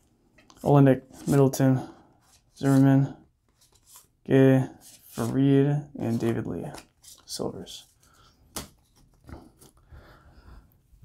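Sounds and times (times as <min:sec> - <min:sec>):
cards rustling and tapping on table: 0:08.5 - 0:09.8.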